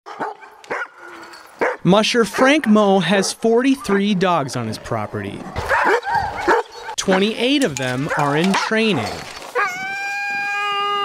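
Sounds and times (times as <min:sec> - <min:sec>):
dogs barking: 0:00.1 - 0:04.2, 0:05.4 - 0:09.8.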